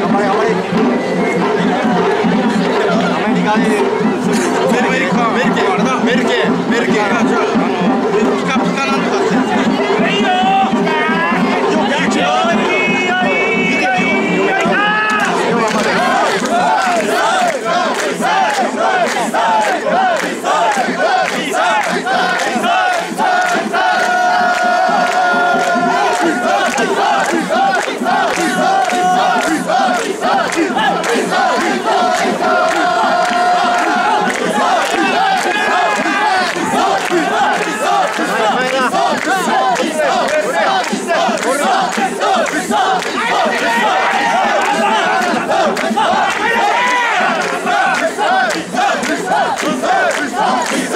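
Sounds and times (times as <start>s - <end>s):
crowd shouting carrying calls: 0.0s - 50.9s.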